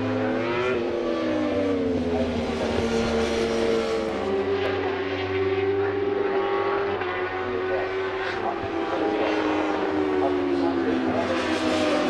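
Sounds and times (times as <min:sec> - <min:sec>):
high racing engine note: 0:00.0 - 0:12.0
motorbike passing by: 0:00.0 - 0:12.0.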